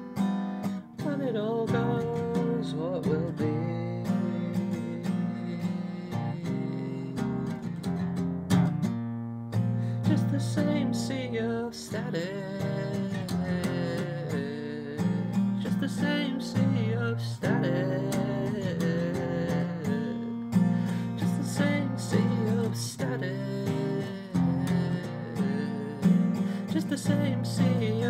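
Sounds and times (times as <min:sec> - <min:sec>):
person singing: 0:00.0 - 0:08.2, 0:09.8 - 0:28.0.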